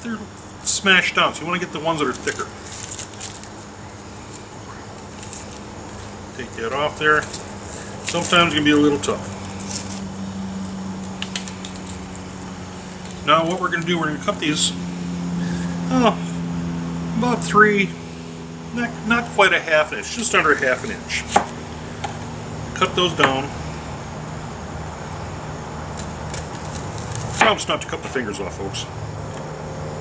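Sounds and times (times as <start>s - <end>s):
low hum: 0.0s - 30.0s
onion skin crackling: 2.0s - 14.0s, 25.8s - 27.6s.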